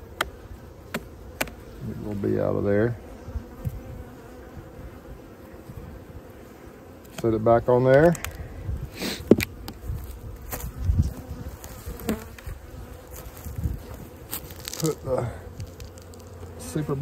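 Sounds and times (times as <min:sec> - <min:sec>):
honeybees buzzing: 0:00.0 - 0:17.0
hive equipment knocks and clicks: 0:00.2 - 0:01.6.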